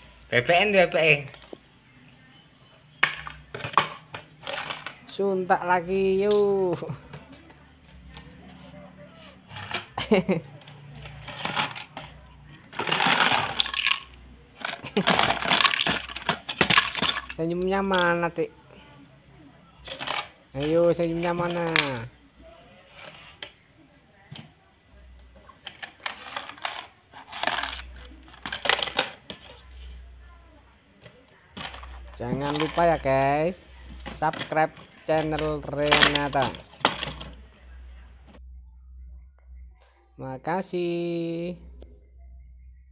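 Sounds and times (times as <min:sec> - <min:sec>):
toy pieces clattering in a box: 0:03.0 - 0:07.2, 0:09.5 - 0:18.4, 0:19.8 - 0:22.1, 0:25.5 - 0:29.6, 0:31.5 - 0:37.4.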